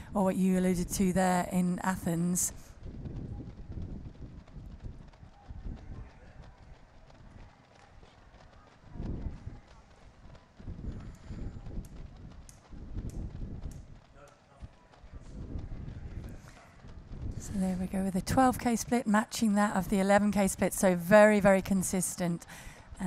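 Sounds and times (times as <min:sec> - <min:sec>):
runners' footsteps on road: 0:00.0 - 0:23.0.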